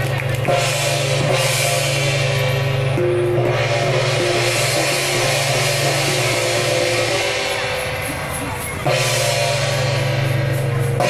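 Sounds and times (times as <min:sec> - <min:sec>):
cymbals crashing: 0:00.0 - 0:11.0
drums beating: 0:00.0 - 0:11.0
gong beating: 0:00.4 - 0:11.0.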